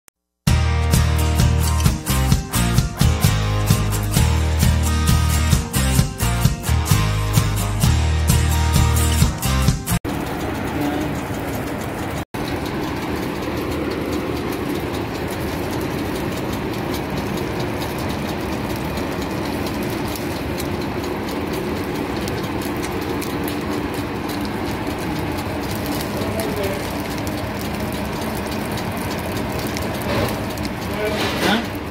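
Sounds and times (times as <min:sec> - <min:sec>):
bacon sizzling on a griddle: 0:17.9 - 0:31.9.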